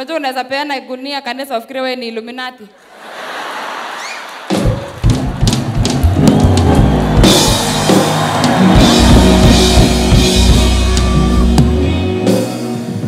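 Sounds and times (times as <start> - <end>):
crowd noise: 2.8 - 13.0
live band playing: 4.4 - 13.0
drum strikes: 4.5 - 12.7.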